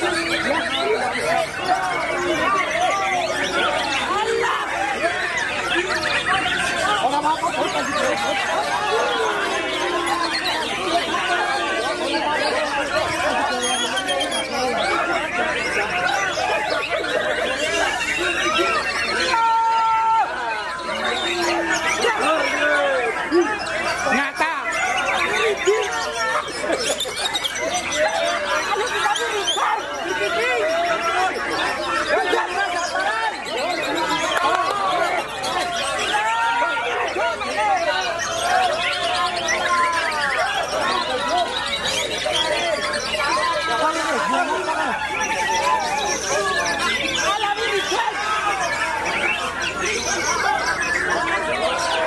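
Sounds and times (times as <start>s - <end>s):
crowd chatter and calling: 0.0s - 52.0s
songbirds singing: 0.0s - 52.0s.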